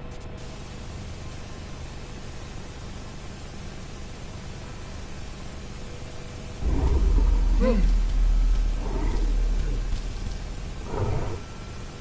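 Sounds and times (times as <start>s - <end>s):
monster roar with wavering cries: 6.6s - 11.5s.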